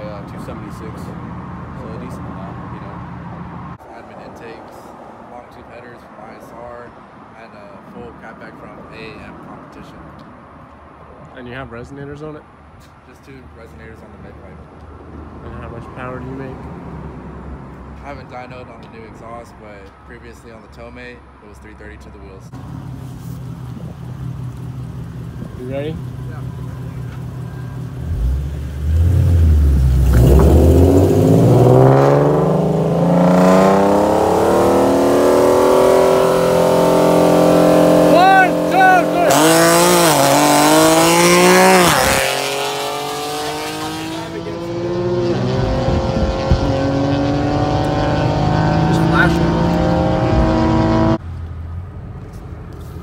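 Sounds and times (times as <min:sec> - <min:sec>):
road noise: 0:00.0 - 0:53.0
car engines revving at full throttle: 0:23.4 - 0:53.0.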